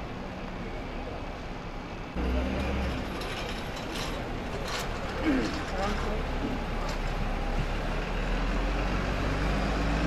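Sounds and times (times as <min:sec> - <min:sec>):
bus engine drone: 0:00.0 - 0:10.0.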